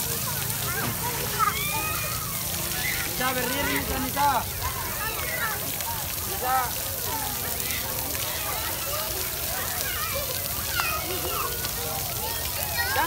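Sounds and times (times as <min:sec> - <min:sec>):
children calling out: 0:00.0 - 0:13.0
fountain water splashing: 0:00.0 - 0:13.0.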